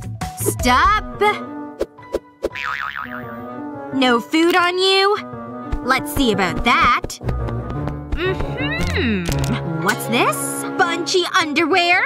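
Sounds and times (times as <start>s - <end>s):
light background music: 0.0s - 12.0s
cartoon boing sound effect: 2.5s - 3.3s.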